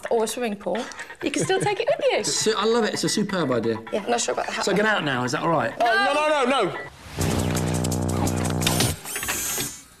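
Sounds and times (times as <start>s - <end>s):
low buzzing drone: 7.1s - 9.0s.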